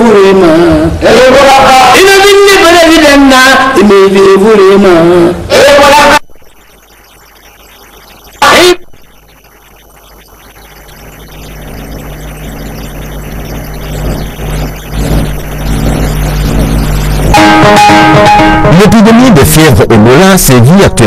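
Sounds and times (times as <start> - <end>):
man's voice: 0.0 - 6.2, 18.6 - 21.0
broadcast announcement music: 0.1 - 21.0
low steady drone: 9.2 - 19.4.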